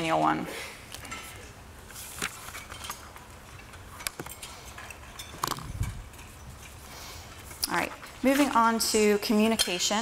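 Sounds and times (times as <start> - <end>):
faint clicks and knocks: 0.9 - 8.7.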